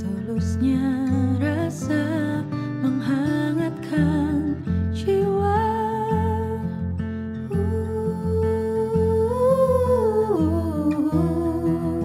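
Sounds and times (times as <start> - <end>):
plucked acoustic guitar: 0.0 - 12.0
woman humming: 7.5 - 12.0.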